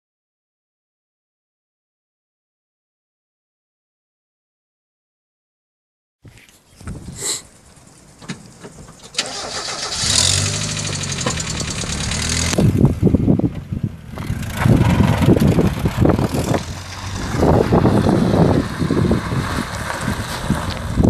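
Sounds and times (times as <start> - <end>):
tyres rumbling over gravel: 7.0 - 21.0
car engine starting and running: 7.5 - 21.0.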